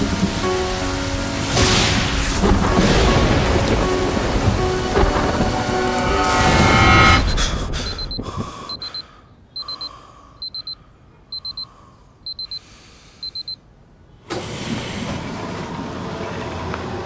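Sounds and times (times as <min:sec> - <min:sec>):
loud steady rushing noise: 0:00.0 - 0:08.2
electronic alarm beeping: 0:07.9 - 0:11.7, 0:12.3 - 0:12.6, 0:13.2 - 0:13.6.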